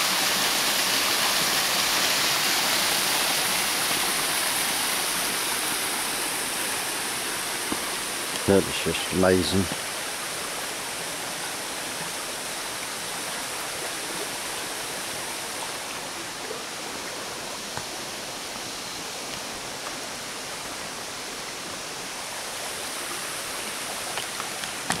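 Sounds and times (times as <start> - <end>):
creek water rushing over rocks: 0.0 - 25.0.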